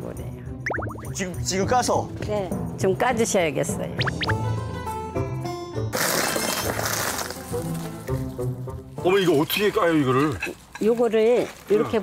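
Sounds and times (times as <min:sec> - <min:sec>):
light background music: 0:00.0 - 0:12.0
glass shattering: 0:06.0 - 0:07.4.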